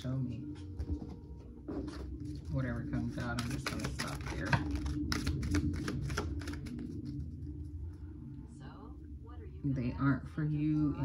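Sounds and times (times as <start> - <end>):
index cards being shuffled: 3.0 - 7.2.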